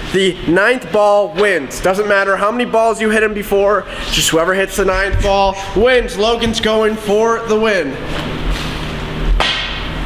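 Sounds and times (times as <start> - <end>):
steady background sound: 0.9 - 10.0
pool cue striking ball: 9.3 - 10.0.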